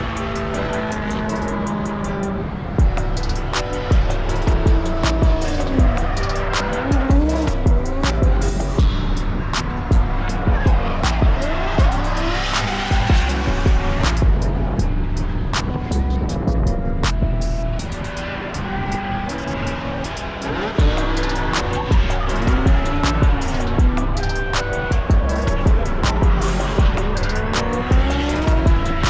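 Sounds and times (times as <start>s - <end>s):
car engine revving: 0.0s - 29.0s
music: 0.0s - 29.0s.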